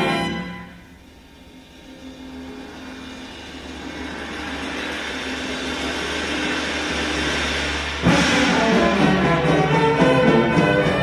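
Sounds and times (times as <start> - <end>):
big band brass entrance: 0.0 - 1.1, 5.7 - 11.0
cymbal roll: 0.0 - 11.0
held low note: 0.5 - 11.0.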